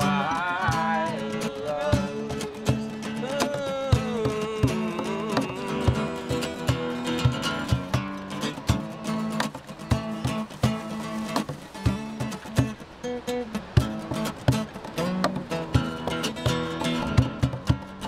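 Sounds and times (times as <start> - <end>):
acoustic guitar strumming chords: 0.0 - 18.0
cajon beating a rhythm: 0.0 - 18.0.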